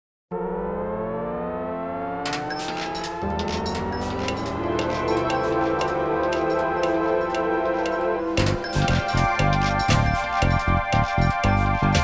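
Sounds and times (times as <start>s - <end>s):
synthesizer tones: 0.3s - 12.0s.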